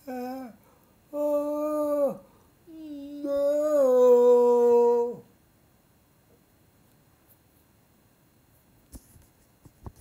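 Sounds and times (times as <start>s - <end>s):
man singing a long note: 0.0s - 5.3s.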